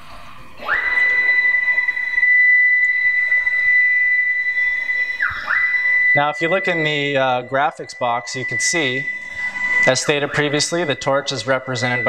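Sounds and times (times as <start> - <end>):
stepper motors whining: 0.0 - 12.0.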